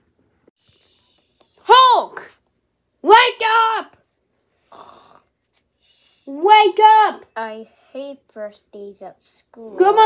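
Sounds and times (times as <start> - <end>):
person imitating a snore: 4.7 - 5.3.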